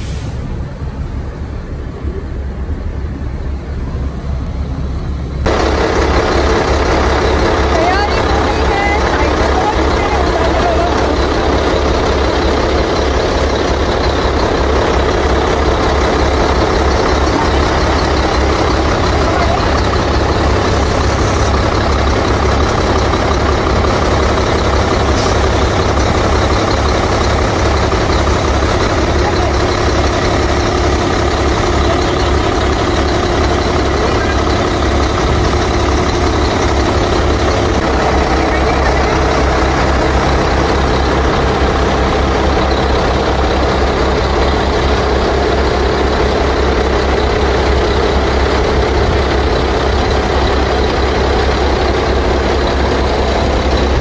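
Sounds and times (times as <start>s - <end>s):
diesel truck engine idling: 0.0s - 54.0s.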